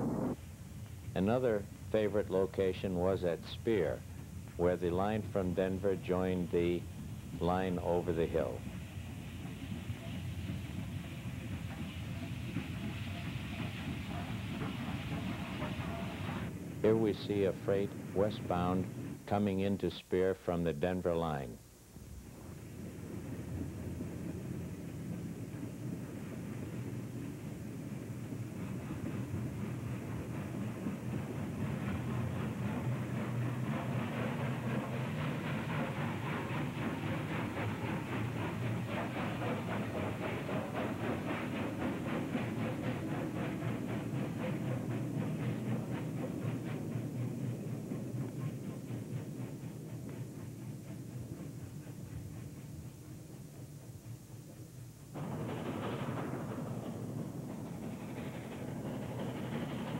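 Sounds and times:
steam locomotive exhaust beats: 0:00.0 - 0:59.9.

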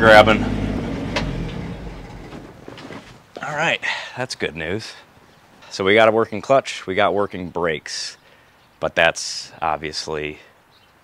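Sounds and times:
unmuffled pickup engine running: 0:00.0 - 0:03.2.

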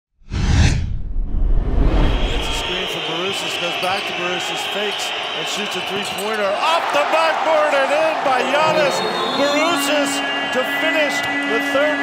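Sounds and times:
deep low rumble: 0:00.3 - 0:02.7
whoosh sound effect: 0:00.3 - 0:02.8.

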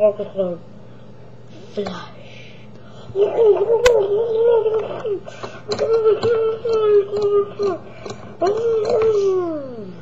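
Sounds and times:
boy wailing: 0:03.2 - 0:07.8, 0:08.4 - 0:10.0.

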